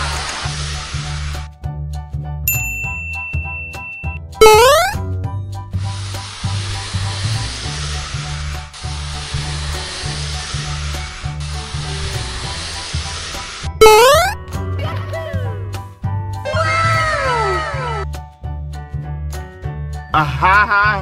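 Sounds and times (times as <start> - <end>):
background music with bass line: 11.4 - 21.0.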